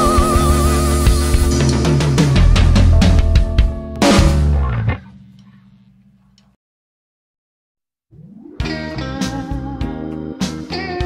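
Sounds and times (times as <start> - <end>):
low hum: 1.0 - 6.6.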